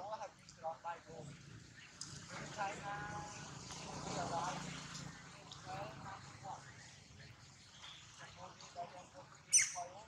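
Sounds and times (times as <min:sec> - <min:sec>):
monkey squeak falling in pitch: 0:09.5 - 0:09.8.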